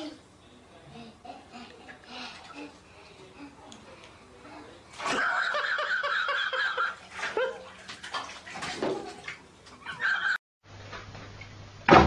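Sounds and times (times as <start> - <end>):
bath water splashing: 4.9 - 10.3.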